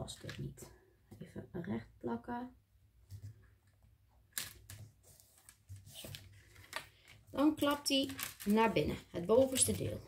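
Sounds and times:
paper rustles and taps: 4.3 - 10.0.

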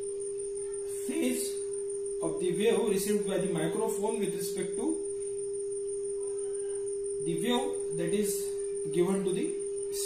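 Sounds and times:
steady sine tone from speaker: 0.0 - 10.0.

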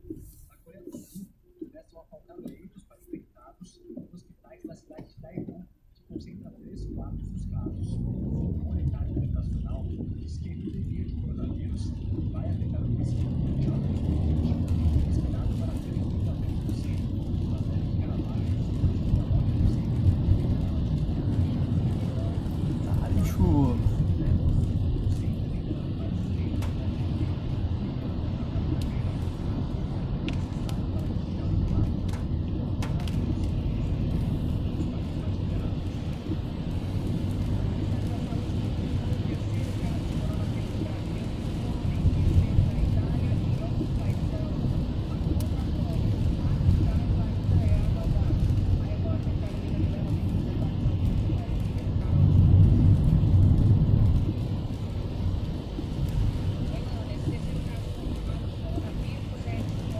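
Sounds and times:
car engine and tyres rumbling: 6.0 - 59.9.

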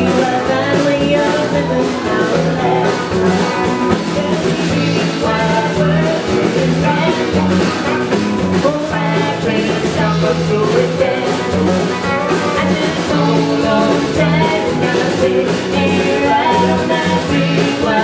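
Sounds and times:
live band playing: 0.0 - 18.0
woman singing: 0.0 - 18.0.

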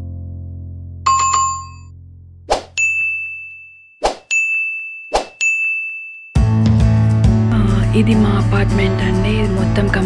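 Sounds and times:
music: 0.0 - 1.2, 6.4 - 10.0
high ding: 1.1 - 1.9, 2.8 - 6.4.

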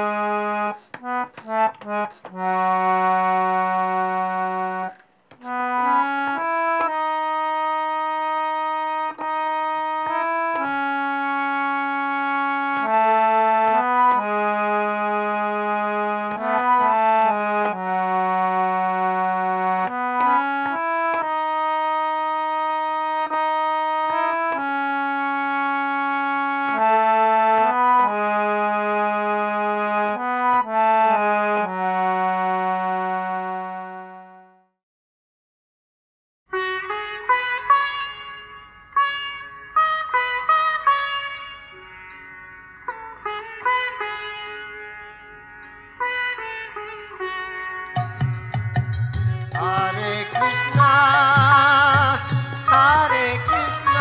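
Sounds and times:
harmonium melody: 0.0 - 34.7, 36.5 - 54.0.

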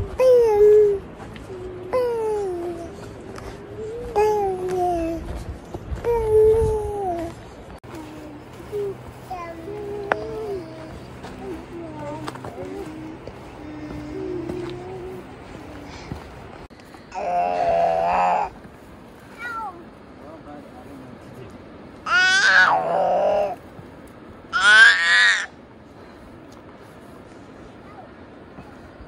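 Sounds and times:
toddler calling out: 8.0 - 15.2, 17.1 - 18.5, 19.3 - 19.9, 22.0 - 23.6, 24.5 - 25.5.

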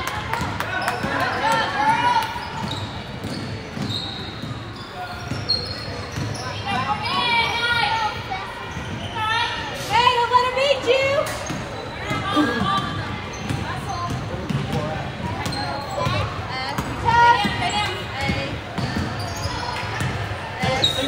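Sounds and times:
voices shouting in a hall: 3.9 - 13.9.

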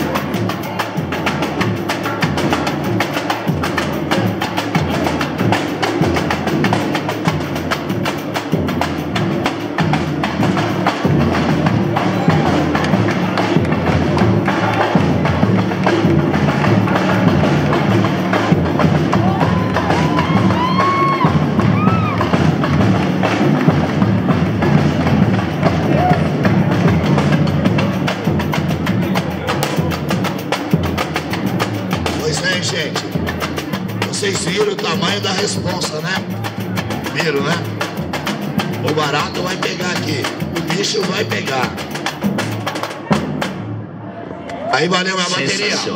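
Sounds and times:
samba drumming: 0.0 - 43.9.

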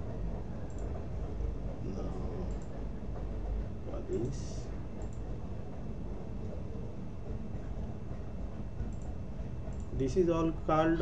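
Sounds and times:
low background hum: 0.0 - 11.0
computer mouse clicks: 0.7 - 0.9, 5.0 - 5.3, 8.9 - 9.9.

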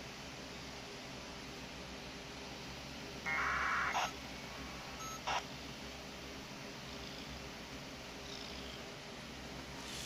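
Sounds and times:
buzzy digital radio tones: 3.3 - 5.5.

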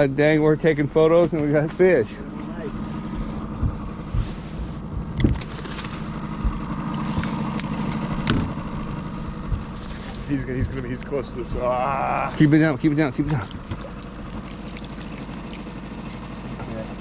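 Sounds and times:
boat motor humming: 0.0 - 17.0.

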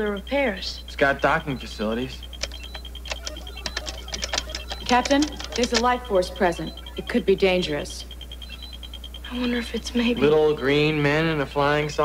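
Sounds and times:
rapid high-pitched beeps: 0.0 - 11.6
low steady hum: 0.0 - 12.0
sharp clicks: 2.3 - 7.2.

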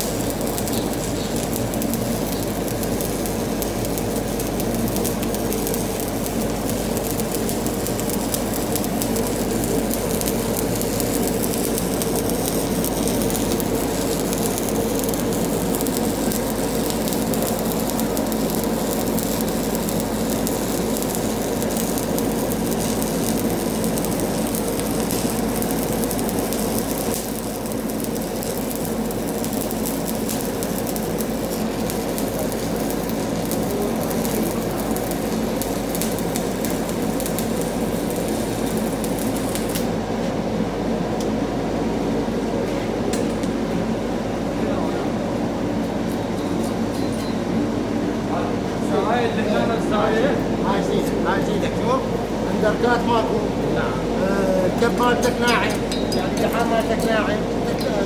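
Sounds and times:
welding arc crackling and sizzling: 0.0 - 41.4, 48.9 - 58.0.

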